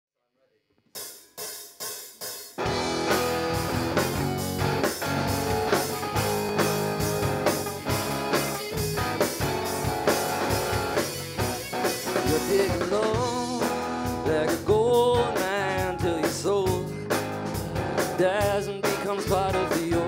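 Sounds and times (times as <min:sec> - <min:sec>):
drum kit playing a beat: 0:01.0 - 0:20.0
electric guitar: 0:02.6 - 0:20.0.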